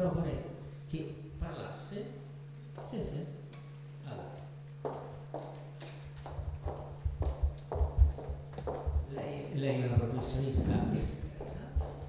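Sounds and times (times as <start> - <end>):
steady low hum: 0.0 - 12.0
microphone handling thumps: 6.3 - 12.0.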